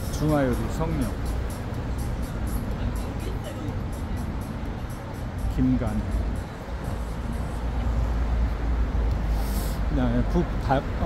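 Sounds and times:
background music: 0.0s - 11.0s
road vehicle rumbling: 0.0s - 11.0s.

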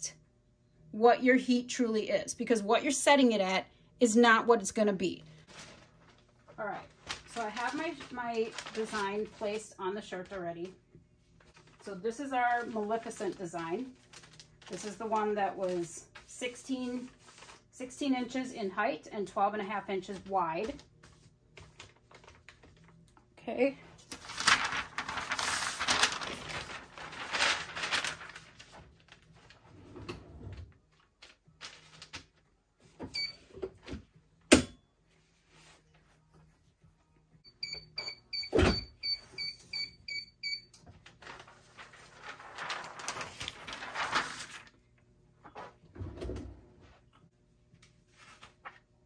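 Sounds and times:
paper and fabric rustling: 5.3s - 18.5s, 19.7s - 23.0s, 23.7s - 29.8s, 35.1s - 36.8s, 40.9s - 44.8s, 47.9s - 49.0s.

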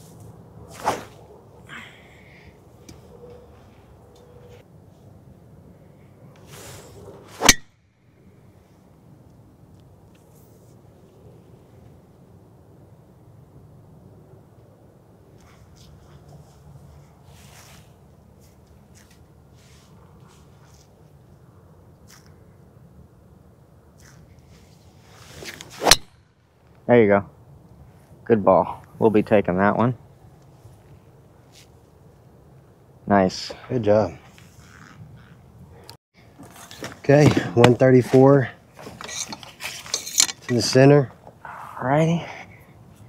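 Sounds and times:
golf club swing swish: 0.0s - 1.3s, 6.4s - 7.6s, 24.0s - 26.1s.

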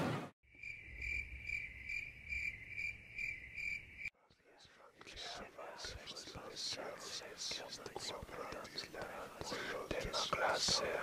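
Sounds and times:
cricket chirping: 0.5s - 4.1s
faint whispering: 4.2s - 11.0s.

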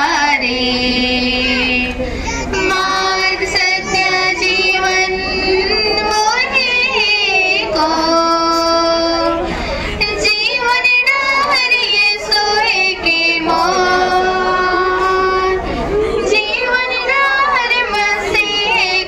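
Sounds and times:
high-pitched woman singing: 0.0s - 19.0s.

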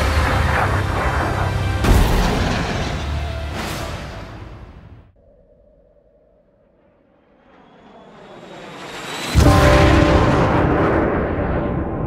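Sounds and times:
jet engine noise: 0.0s - 1.8s, 5.1s - 12.0s.

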